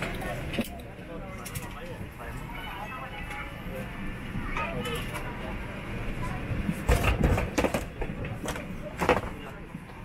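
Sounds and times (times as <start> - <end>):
faint passenger voices: 0.0 - 10.0.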